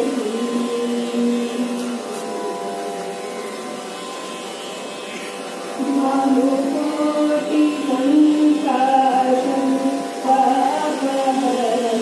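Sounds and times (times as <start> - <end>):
person singing: 0.0 - 2.4, 5.8 - 12.0
faint steady tones: 0.0 - 12.0.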